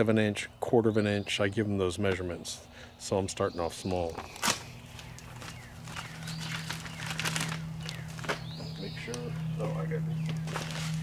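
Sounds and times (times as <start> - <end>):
steady low hum: 0.0 - 11.0
bag crinkling and rustling: 4.1 - 8.5, 10.2 - 11.0.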